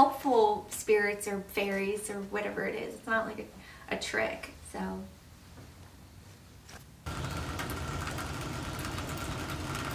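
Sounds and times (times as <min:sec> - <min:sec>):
rain on a wooden deck: 0:07.1 - 0:09.9.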